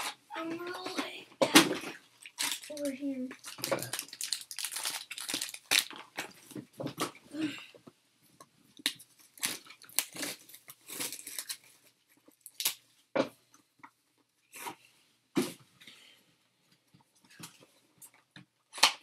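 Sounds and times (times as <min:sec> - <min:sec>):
foil wrappers crinkling and tearing: 0:02.2 - 0:06.5, 0:08.8 - 0:11.8, 0:12.4 - 0:12.8.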